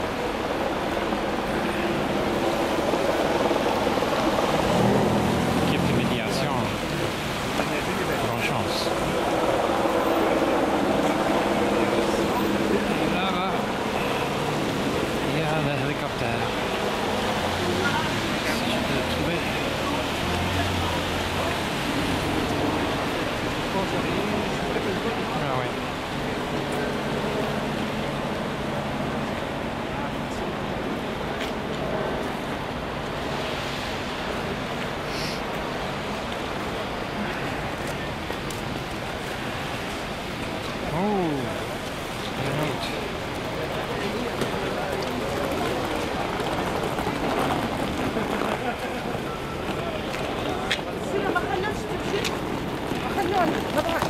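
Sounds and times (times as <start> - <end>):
cars passing on wet road: 0.0 - 54.0
indistinct voices outdoors: 0.0 - 54.0.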